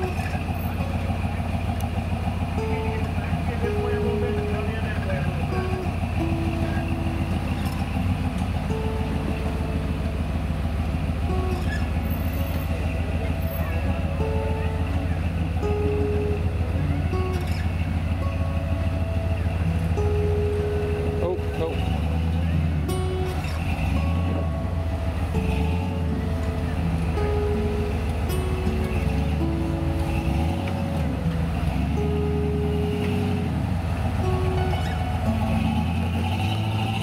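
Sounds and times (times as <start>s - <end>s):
car engine at low revs: 0.0s - 37.0s.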